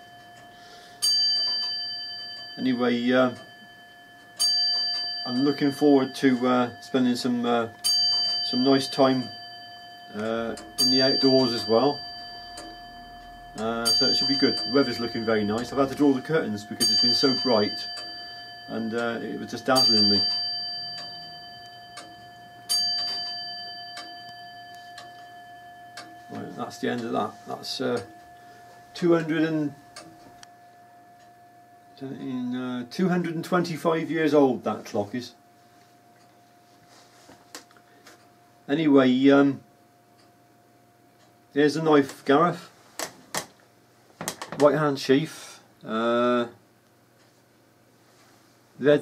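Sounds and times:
clock bell striking: 0.0s - 35.6s
clock ticking faintly: 0.0s - 36.6s.

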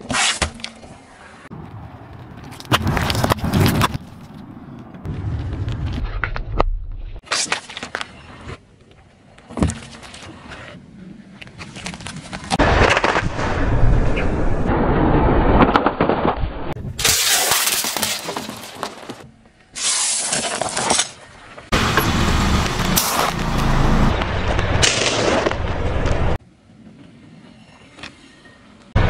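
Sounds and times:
tyres crunching objects: 1.5s - 8.3s, 15.6s - 26.4s.

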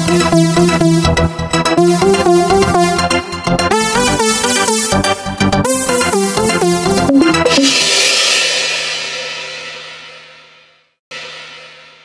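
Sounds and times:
quieter cymbal crash: 7.3s - 12.0s.

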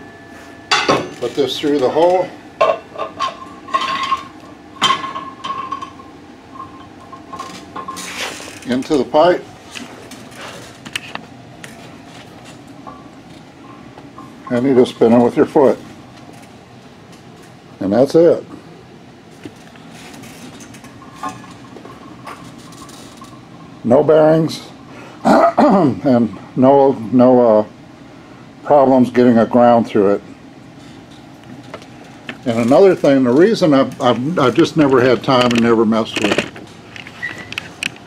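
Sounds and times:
pipe ringing high tone: 0.0s - 8.1s, 12.8s - 15.8s.

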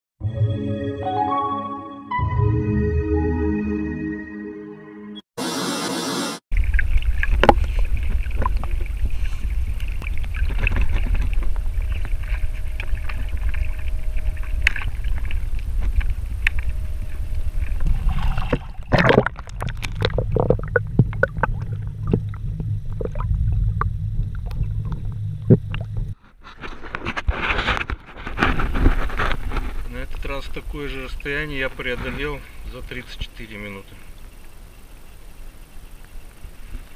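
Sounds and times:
splashes and knocks: 6.5s - 16.6s, 17.7s - 26.2s
water washing against float: 6.5s - 26.2s.

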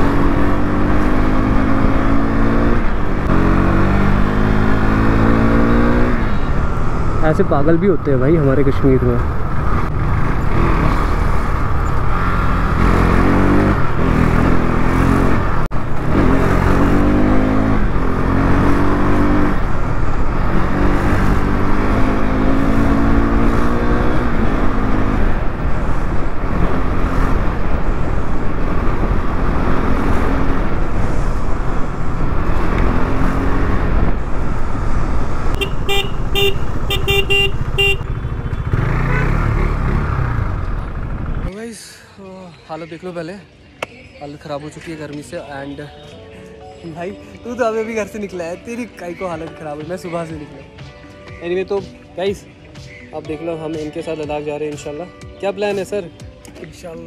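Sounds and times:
motorcycle engine revving: 0.0s - 41.5s
wind and road rumble: 0.0s - 41.7s
horn beeping: 35.5s - 39.6s.

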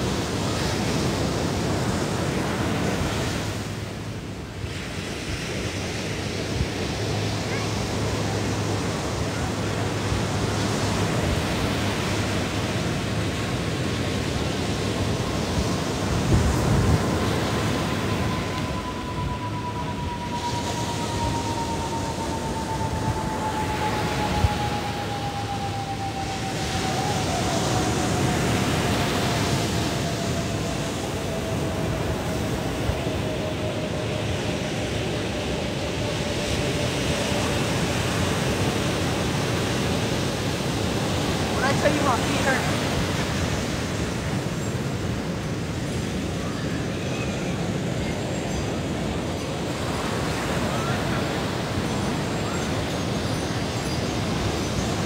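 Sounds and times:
ocean surf breaking: 0.0s - 55.0s.

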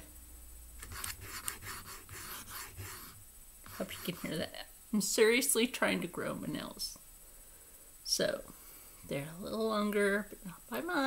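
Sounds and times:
fingernails scraping hard surface: 0.8s - 4.4s.

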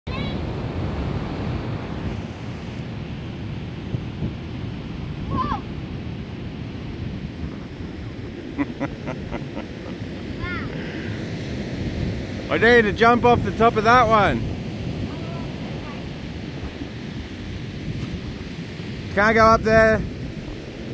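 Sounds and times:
ocean surf rushing: 0.1s - 20.9s
wind on microphone: 0.1s - 20.9s.

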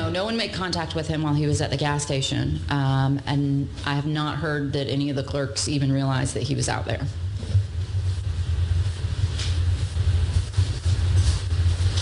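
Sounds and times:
steady low rumble: 0.0s - 12.0s
soft rustle: 7.3s - 12.0s.

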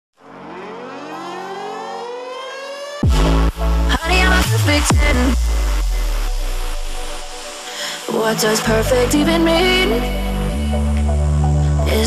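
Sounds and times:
synthesized rising tone: 0.2s - 12.0s.

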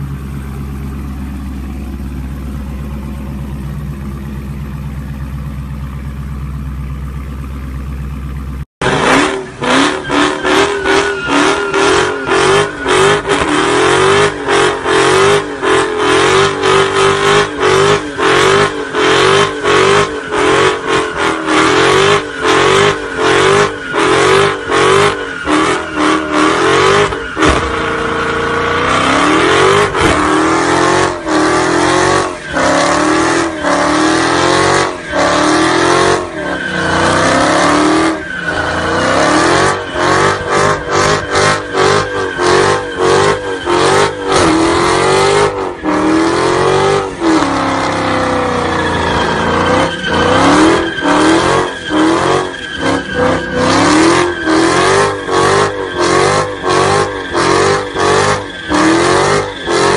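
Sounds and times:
car engine bouncing off rev limiter: 0.0s - 59.9s.

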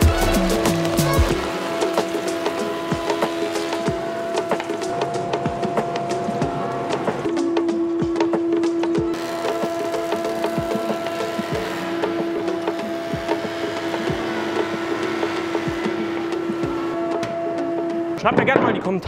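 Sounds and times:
planer motor hum: 0.0s - 7.4s, 8.2s - 18.2s
wooden board knocks: 18.2s - 19.0s.

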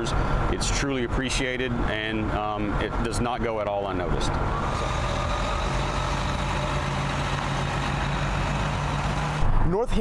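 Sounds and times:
bus diesel engine humming: 3.9s - 9.6s
man talking: 9.6s - 10.0s.

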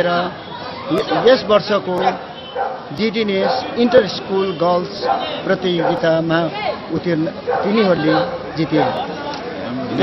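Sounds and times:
background chatter: 0.0s - 10.0s
man talking: 0.9s - 2.2s, 2.9s - 10.0s.

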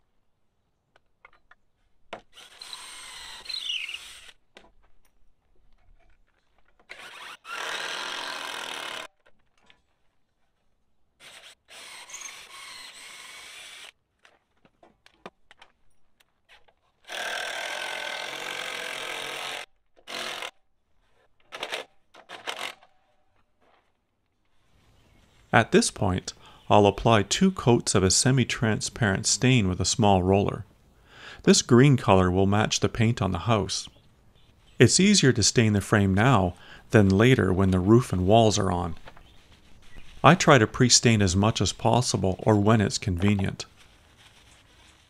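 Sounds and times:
power drill boring into wood: 2.3s - 4.4s, 6.9s - 9.1s, 11.2s - 14.0s, 17.0s - 20.5s.

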